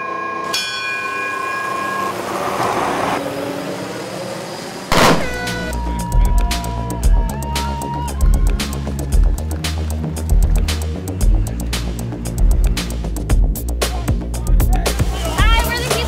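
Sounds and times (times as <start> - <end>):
bell ringing: 0.0 - 2.2
falling tones: 0.4 - 6.3
sudden loud bang: 4.9 - 5.7
electronic music with steady beat: 5.4 - 16.0.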